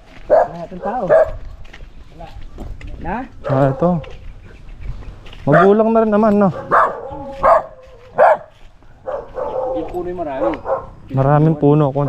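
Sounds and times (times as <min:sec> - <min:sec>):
dog barking: 0:00.2 - 0:01.5, 0:03.4 - 0:04.2, 0:05.5 - 0:05.9, 0:06.5 - 0:11.1.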